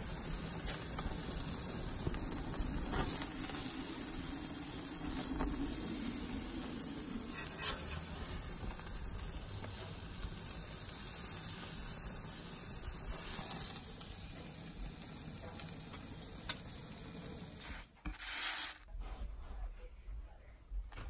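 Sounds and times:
burger patties sizzling on a grill: 0.0 - 18.8.

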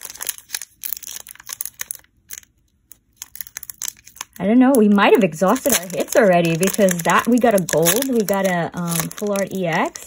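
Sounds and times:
foil wrapper crinkling and tearing: 0.0 - 10.0.

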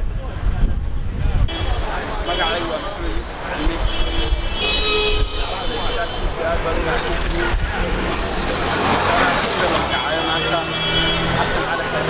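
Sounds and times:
road traffic: 0.0 - 12.0
man talking: 1.8 - 4.4, 5.5 - 12.0.

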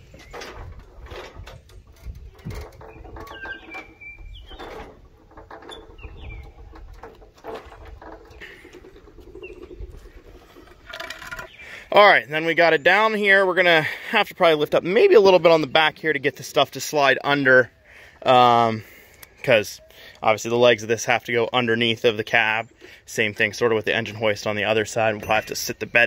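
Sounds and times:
truck cab lowered onto wooden blocks: 0.0 - 11.6
hand-cranked lift clicking: 0.1 - 11.6.

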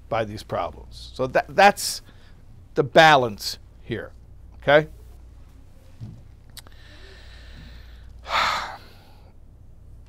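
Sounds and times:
sharp breath close to microphone: 6.6 - 9.3.

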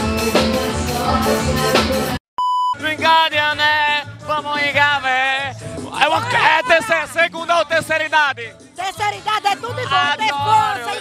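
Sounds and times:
live band music with bass: 0.0 - 2.2
short electronic beep: 2.4 - 2.8.

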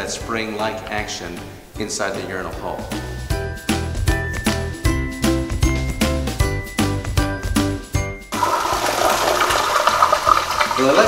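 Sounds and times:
upbeat background music: 0.0 - 11.0
urinal flushing: 8.3 - 11.0
water splashing: 8.4 - 11.0.

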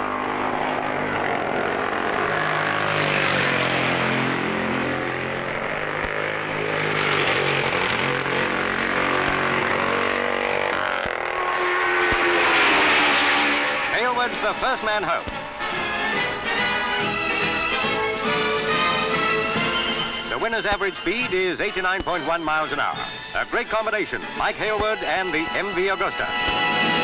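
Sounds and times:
racing motorcycles passing: 0.0 - 27.0.

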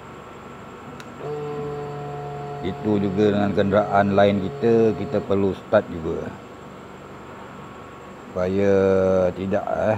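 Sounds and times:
low electric hum: 0.0 - 9.9
switch click: 1.0 - 1.2.

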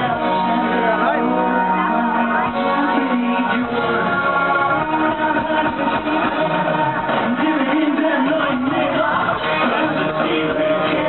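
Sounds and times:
drums: 0.0 - 11.0
electric guitar: 0.0 - 11.0
person singing: 0.0 - 11.0.

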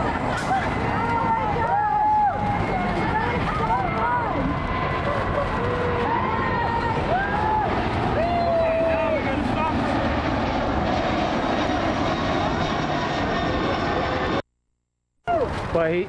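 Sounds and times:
women exclaiming and laughing: 0.0 - 7.4
jet airliner roar: 0.0 - 14.4.

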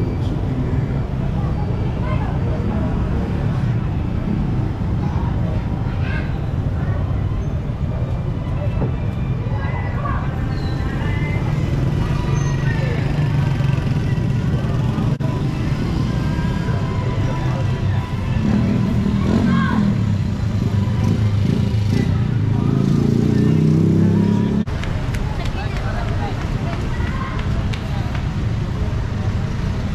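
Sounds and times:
motorcycle and car engines rumbling: 0.0 - 29.9.

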